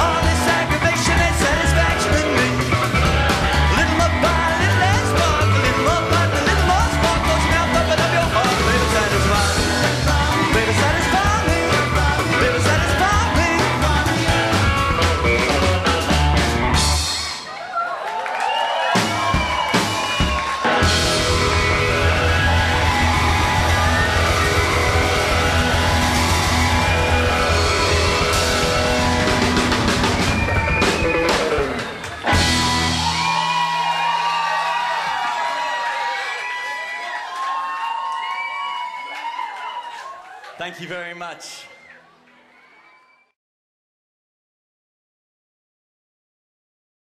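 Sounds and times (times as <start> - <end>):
rock band playing: 0.0 - 17.6, 18.8 - 34.5
crowd cheering: 0.0 - 43.4.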